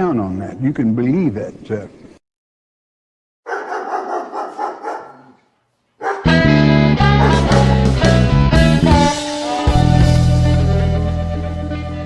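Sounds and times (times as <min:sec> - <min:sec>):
dogs barking: 0:03.4 - 0:07.9.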